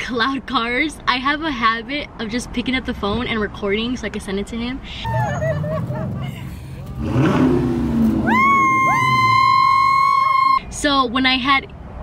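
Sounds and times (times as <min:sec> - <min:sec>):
car engines revving: 0:05.1 - 0:10.2
high steady shrieks: 0:05.1 - 0:10.6.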